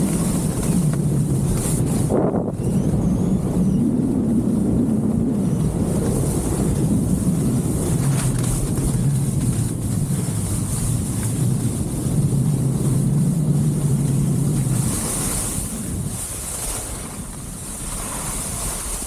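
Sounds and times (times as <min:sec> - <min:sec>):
wind buffeting microphone: 0:00.0 - 0:19.0
skis hissing over slushy snow: 0:08.0 - 0:19.0.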